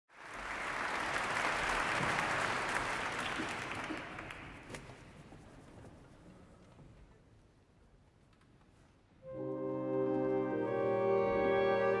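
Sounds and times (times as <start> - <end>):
audience applauding: 0.1 - 4.7.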